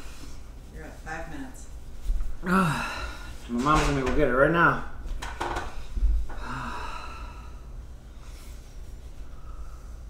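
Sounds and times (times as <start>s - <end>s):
man grunting: 2.4s - 2.9s.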